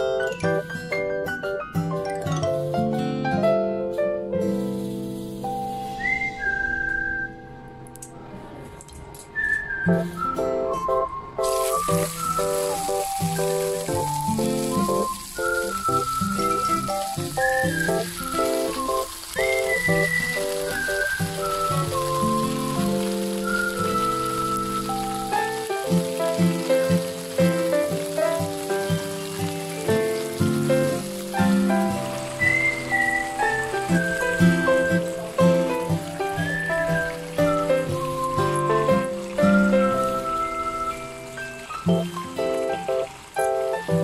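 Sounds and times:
background music: 0.0s - 44.0s
squid sizzling in a pan: 4.5s - 6.2s, 11.4s - 44.0s.

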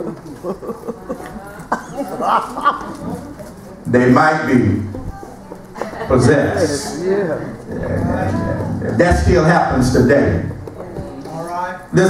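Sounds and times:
low hummed vocal sound: 7.6s - 10.6s.

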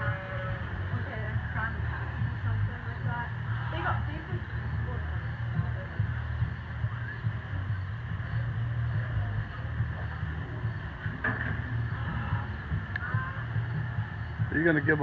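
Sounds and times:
faint distant voices talking: 0.0s - 15.0s
low barn hum: 0.0s - 15.0s.

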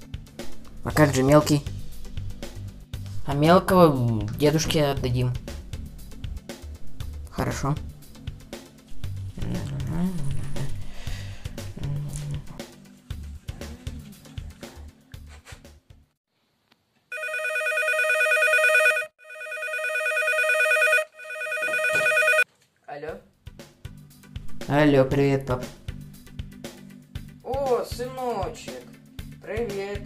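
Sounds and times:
background music: 0.0s - 16.2s, 21.7s - 30.0s
telephone ringing: 17.1s - 22.5s.

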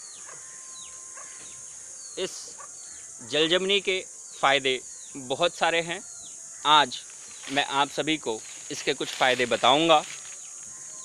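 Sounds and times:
high insect drone: 0.0s - 11.0s.

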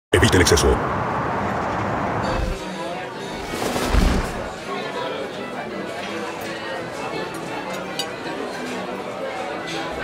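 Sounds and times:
hissing city ambience: 0.1s - 4.6s
quiet music: 2.2s - 10.0s.

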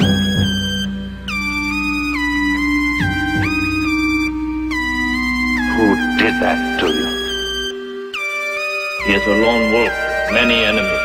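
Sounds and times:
sliding synth lead: 0.0s - 11.0s.

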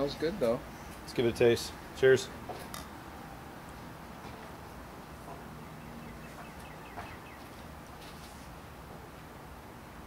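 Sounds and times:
outdoor background hiss: 0.0s - 10.0s
faint bird chirps: 5.6s - 7.6s.

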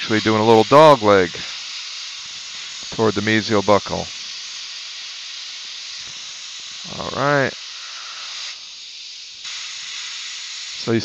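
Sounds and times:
steady hiss: 0.0s - 11.0s.

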